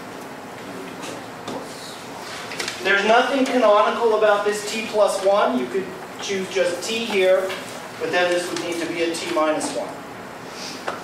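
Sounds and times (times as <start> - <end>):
low room noise: 0.0 - 11.0
man speaking: 2.8 - 10.0.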